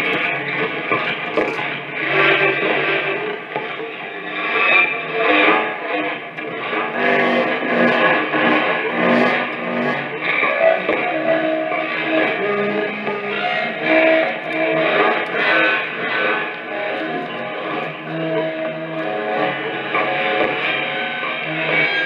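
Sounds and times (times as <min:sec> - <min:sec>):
distorted prepared electric guitar: 0:00.0 - 0:22.0.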